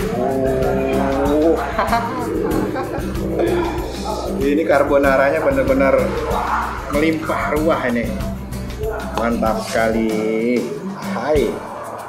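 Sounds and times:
background music: 0.0s - 12.0s
man's wordless vocal exclamation: 3.2s - 6.2s.

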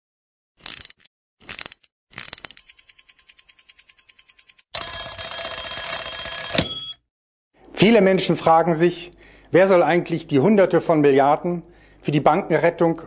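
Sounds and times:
mechanical alarm bell ringing: 4.8s - 7.0s.

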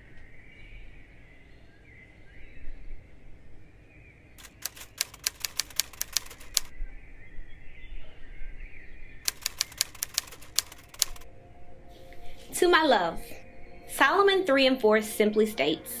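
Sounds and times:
typewriter key clacks: 4.4s - 6.7s, 9.3s - 11.2s.

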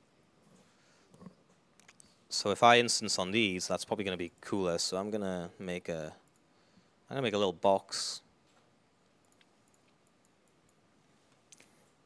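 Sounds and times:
faint mouse clicks: 8.5s - 11.9s.

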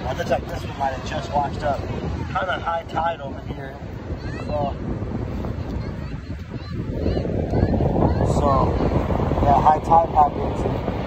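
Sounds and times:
surf washing on beach: 0.0s - 11.0s
wind buffeting microphone: 0.0s - 11.0s.

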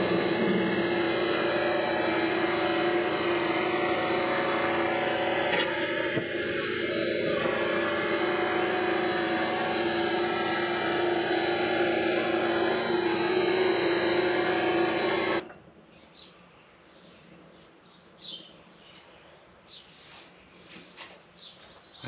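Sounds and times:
lathe motor and gear whine: 0.0s - 15.5s.

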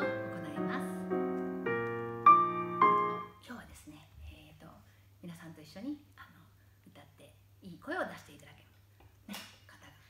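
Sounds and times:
digital piano chord: 0.0s - 3.3s.

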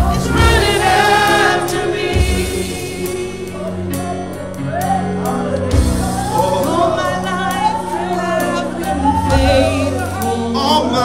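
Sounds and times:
drums: 0.0s - 11.0s
keyboard: 0.0s - 11.0s
voices singing gospel: 0.0s - 11.0s.

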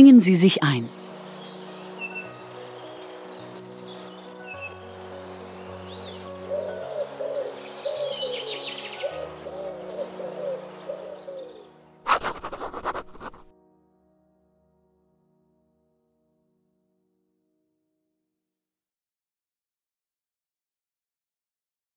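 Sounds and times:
soft ambient music: 0.0s - 16.5s
birds chirping: 0.1s - 13.5s
low bird calls: 5.8s - 13.5s
loud scratchy burst: 12.1s - 13.5s.

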